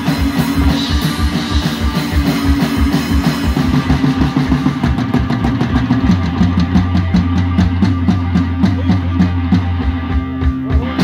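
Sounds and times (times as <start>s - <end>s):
distorted guitar riffing: 0.0s - 11.0s
fast kick drum beats: 0.0s - 11.0s.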